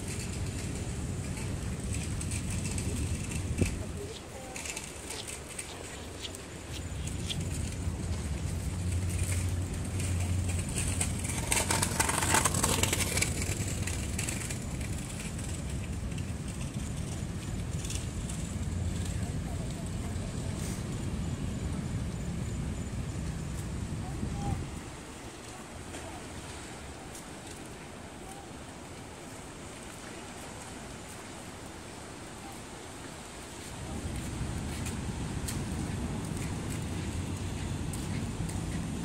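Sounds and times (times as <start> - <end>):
wind rumbling on microphone: 0.0 - 39.0.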